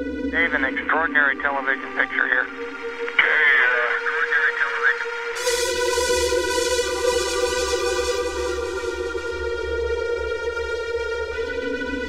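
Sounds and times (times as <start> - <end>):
radio-like voice sample: 0.4 - 5.1.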